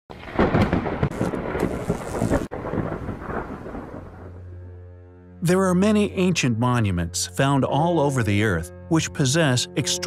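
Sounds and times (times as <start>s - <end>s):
rain: 0.1s - 4.5s
thunder crash: 0.1s - 4.6s
thunder rumbling: 0.1s - 4.8s.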